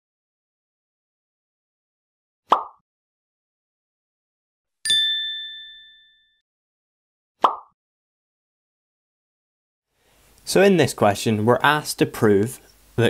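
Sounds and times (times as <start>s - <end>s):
bright ding: 4.9s - 6.4s.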